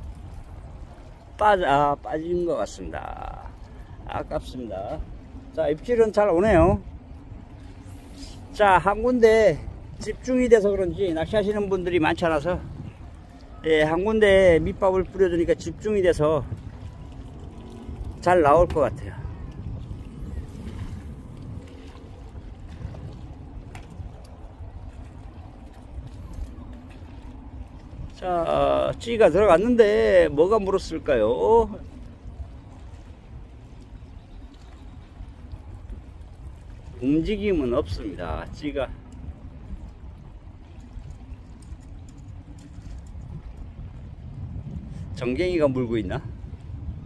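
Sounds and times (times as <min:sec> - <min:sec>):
water lapping against rocks: 0:00.0 - 0:45.3
wind buffeting microphone: 0:00.0 - 0:47.0.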